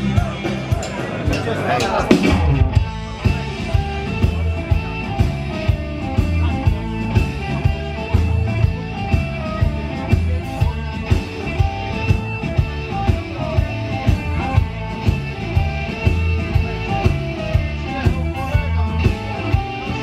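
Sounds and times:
bass guitar: 0:00.0 - 0:20.0
electric guitars: 0:00.0 - 0:20.0
steady drum beat: 0:00.0 - 0:20.0.

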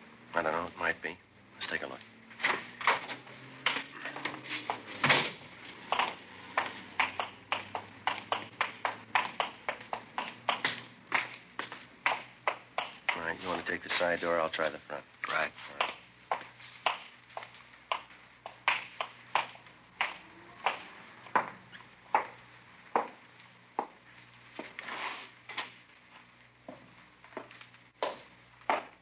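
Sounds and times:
footsteps on hard surface: 0:02.4 - 0:13.8, 0:20.7 - 0:29.0.

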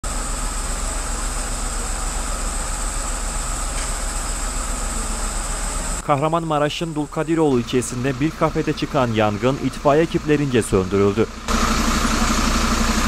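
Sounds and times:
fire engine idling: 0:00.0 - 0:13.0.

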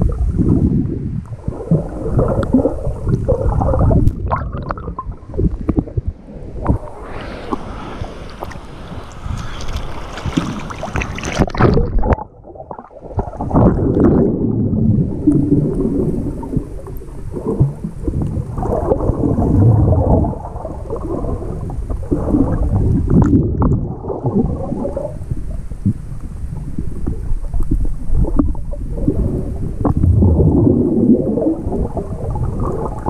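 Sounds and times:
muffled underwater rumble: 0:00.0 - 0:33.0
water sloshing and splashing: 0:01.4 - 0:14.3.

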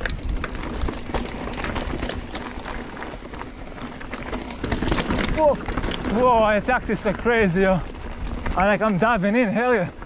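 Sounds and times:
bike clicking and rattling: 0:00.0 - 0:10.0
tyres crunching over dirt and rocks: 0:00.0 - 0:10.0.

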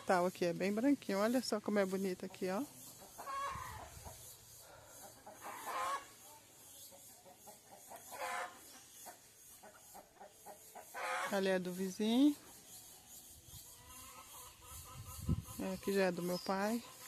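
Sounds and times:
chickens clucking: 0:00.0 - 0:17.0.

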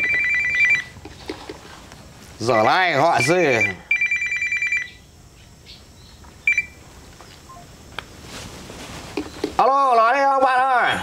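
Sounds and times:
phone ringtone trill: 0:00.0 - 0:00.9, 0:02.5 - 0:05.0, 0:06.5 - 0:06.8.

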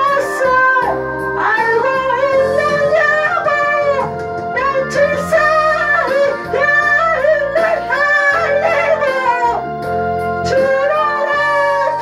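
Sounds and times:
man singing into microphone: 0:00.0 - 0:09.7, 0:10.3 - 0:12.0
karaoke backing track: 0:00.0 - 0:12.0.

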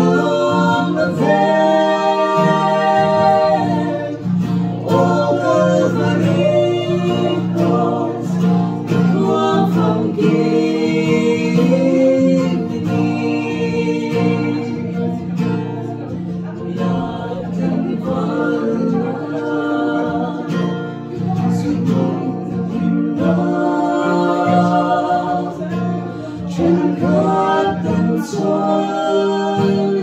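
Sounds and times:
acoustic guitar strumming: 0:00.0 - 0:30.0
women singing: 0:00.0 - 0:30.0.

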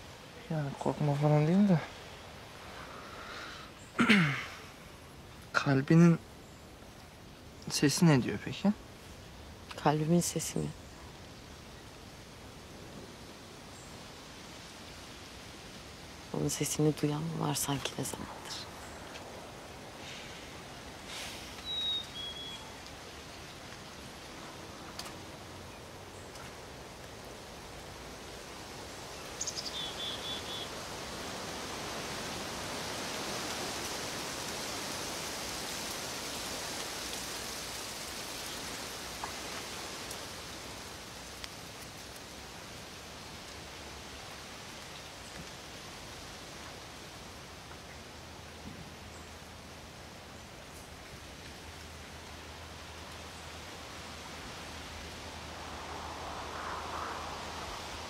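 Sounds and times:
wind rustling leaves: 0:00.0 - 0:58.0
bird chirping: 0:21.6 - 0:23.7, 0:29.2 - 0:30.7.

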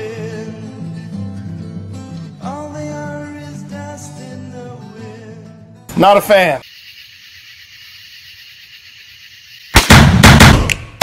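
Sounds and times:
loud blast-like burst: 0:09.8 - 0:11.0.

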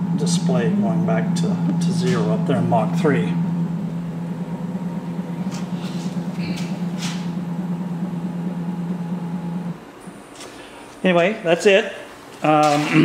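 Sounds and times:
stepper motor humming: 0:00.0 - 0:11.5.

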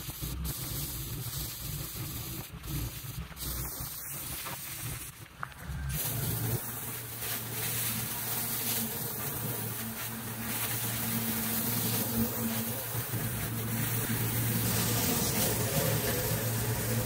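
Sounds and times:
low buzzing drone: 0:00.0 - 0:17.0
pressure washer spray hissing: 0:00.0 - 0:17.0.

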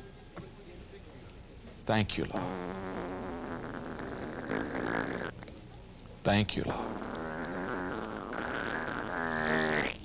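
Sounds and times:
fart sound effect: 0:02.4 - 0:05.4, 0:06.9 - 0:10.0.

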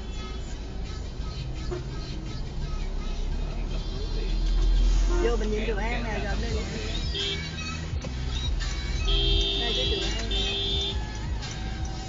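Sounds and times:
city traffic engine rumble: 0:00.0 - 0:12.0
quiet background music: 0:00.0 - 0:12.0.

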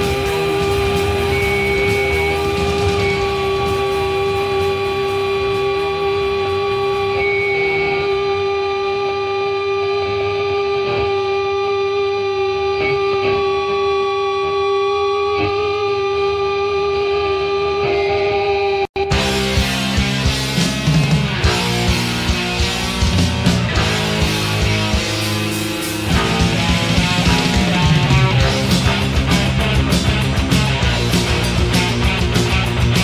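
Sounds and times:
cymbal wash: 0:00.0 - 0:12.6
held guitar note ringing: 0:00.0 - 0:33.0.

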